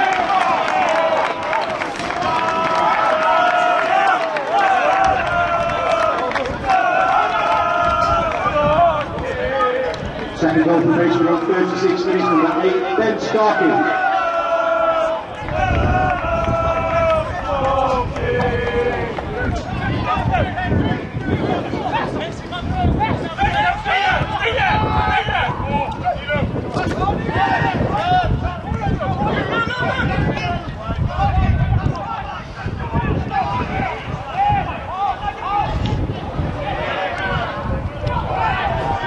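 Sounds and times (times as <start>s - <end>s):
wind rumble on microphone: 0.0s - 12.2s, 13.9s - 39.0s
people shouting: 0.0s - 39.0s.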